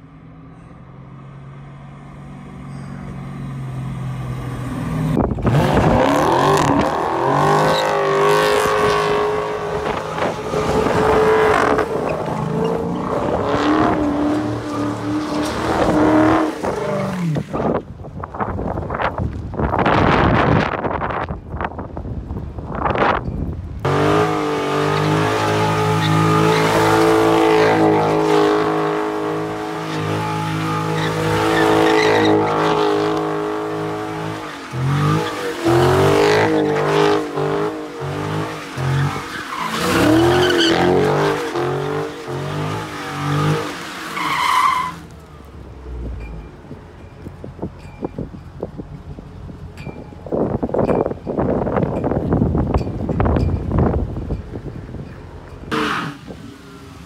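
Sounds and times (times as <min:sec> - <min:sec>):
car engine revving: 0:01.4 - 0:17.9, 0:23.8 - 0:46.2
tyres squealing on asphalt: 0:02.3 - 0:18.0, 0:23.2 - 0:48.8, 0:50.0 - 0:57.0.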